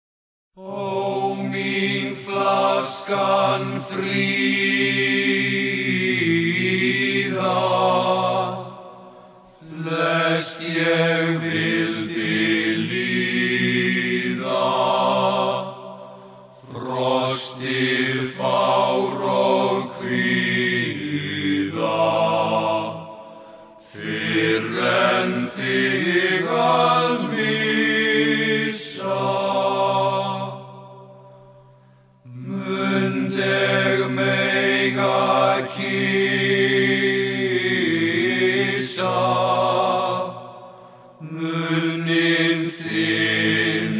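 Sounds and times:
voices singing in two parts: 0.6s - 43.9s.

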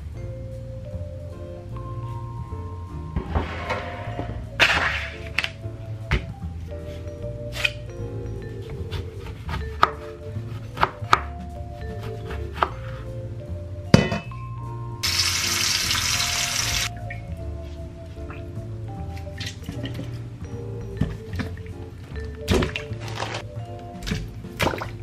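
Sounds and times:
background music: 0.0s - 25.0s
metal bowl clunking in sink: 14.0s - 14.3s.

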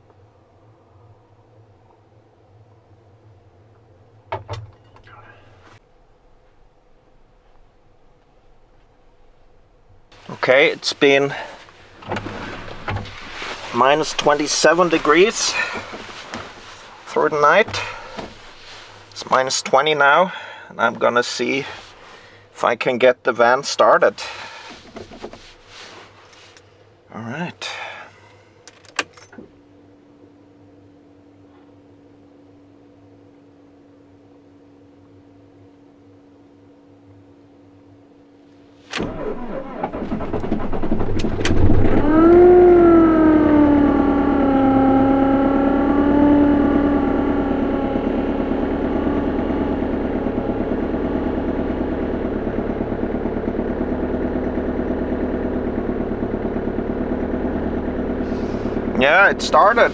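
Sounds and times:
faint steady hum: 0.0s - 40.8s
van engine revving and idling: 9.5s - 22.7s, 23.7s - 26.5s, 39.0s - 59.9s
starter cranking: 39.0s - 53.4s.

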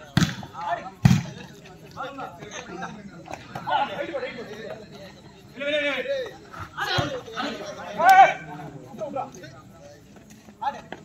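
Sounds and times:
volleyball hit slap: 0.1s - 1.4s
people shouting: 5.6s - 8.6s.

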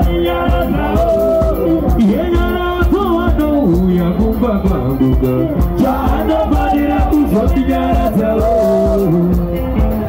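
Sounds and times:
drums with steady beat: 0.0s - 10.0s
electric guitar: 0.0s - 10.0s
man singing: 0.0s - 10.0s.

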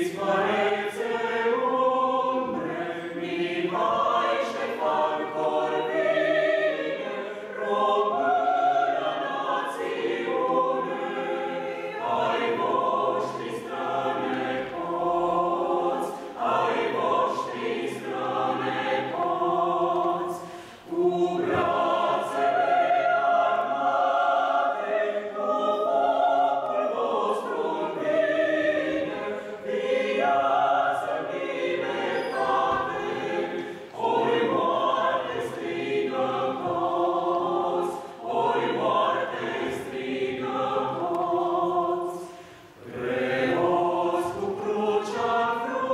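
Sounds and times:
mixed choir singing a cappella: 0.0s - 45.9s.

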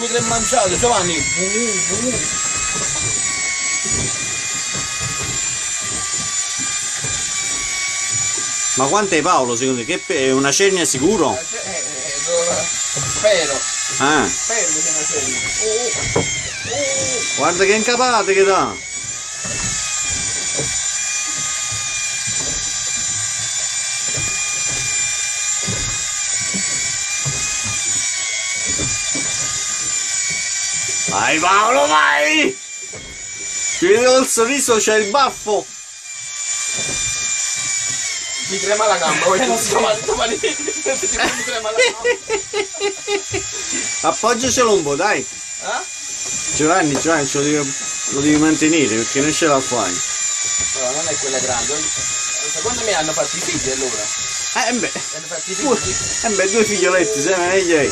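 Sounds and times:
fishing reel motor whining: 0.0s - 57.9s.

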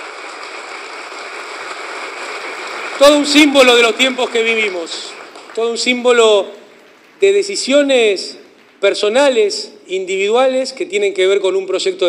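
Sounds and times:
audience applause: 0.0s - 6.2s.

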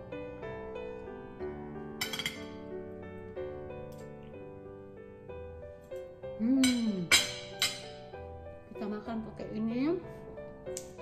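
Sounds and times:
soft piano music: 0.0s - 11.0s
cutlery clinking on a plate: 2.0s - 2.5s.

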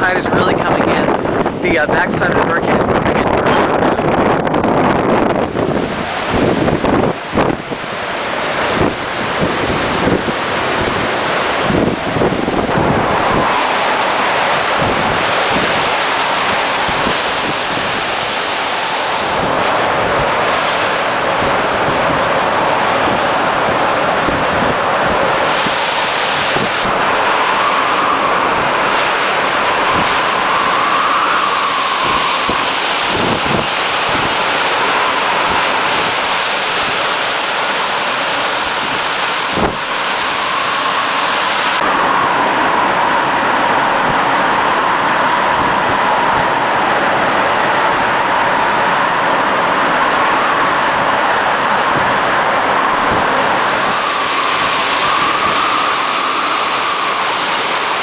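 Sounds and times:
strong wind through trees: 0.0s - 58.0s
thin whistling in gusts: 25.5s - 43.3s, 52.8s - 58.0s.

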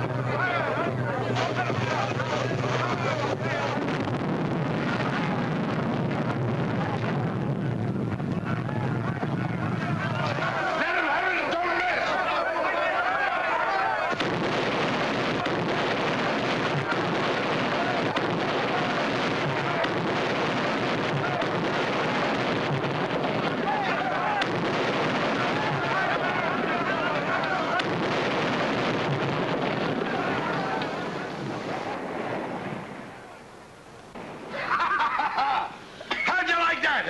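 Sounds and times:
explosions: 0.0s - 11.4s, 14.0s - 33.5s, 34.1s - 35.6s
gunshots: 0.0s - 33.4s
men shouting: 8.5s - 14.2s, 15.2s - 31.2s.

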